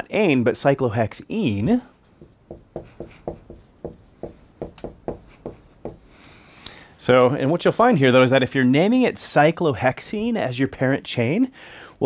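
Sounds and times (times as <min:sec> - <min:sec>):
marker writing on whiteboard: 0:02.1 - 0:06.2.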